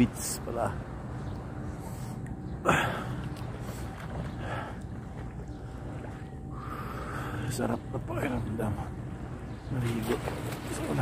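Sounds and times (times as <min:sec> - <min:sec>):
sea water lapping and sloshing: 0:00.0 - 0:11.0
steady low rumble: 0:00.0 - 0:11.0.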